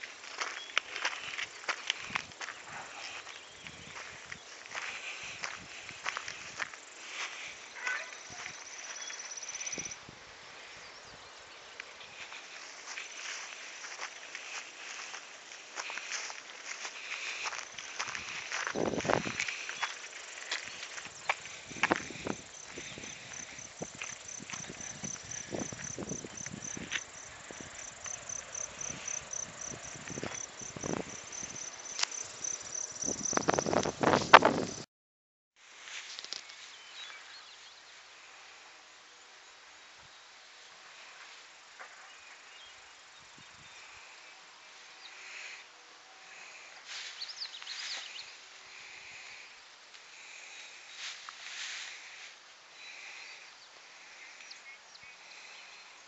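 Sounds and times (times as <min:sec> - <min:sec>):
insect chirping: 0:00.0 - 0:34.8
microphone handling clicks and rustles: 0:33.2 - 0:34.8
outdoor hiss: 0:46.4 - 0:55.7.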